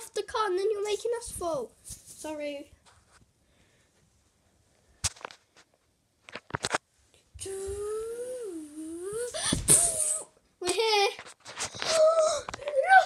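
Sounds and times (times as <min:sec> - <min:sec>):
person humming: 0:07.4 - 0:10.3.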